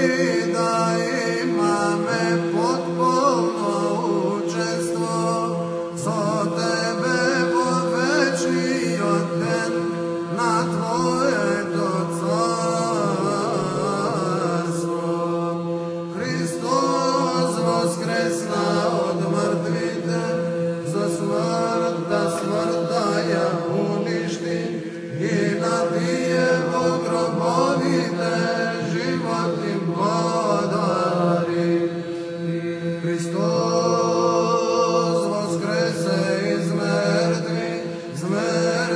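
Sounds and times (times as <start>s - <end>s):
steady held drone note: 0.0s - 38.8s
man chanting melismatic hymn: 0.0s - 38.9s.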